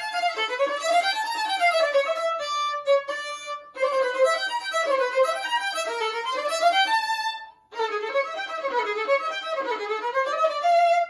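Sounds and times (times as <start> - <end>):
bowed violin: 0.0 - 11.0.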